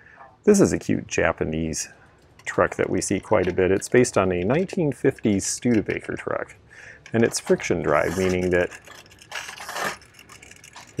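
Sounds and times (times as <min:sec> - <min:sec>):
toy friction motor whirring: 0:07.2 - 0:11.0.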